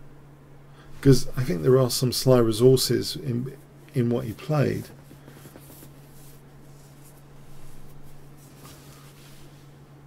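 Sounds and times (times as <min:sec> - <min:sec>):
low electrical hum: 0:00.0 - 0:10.0
faint rustle: 0:03.6 - 0:09.9.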